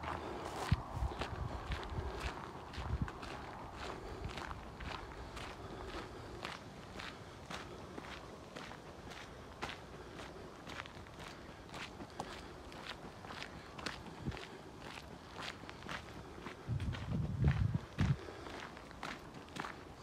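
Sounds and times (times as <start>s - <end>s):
footsteps on dirt track: 0.0s - 20.0s.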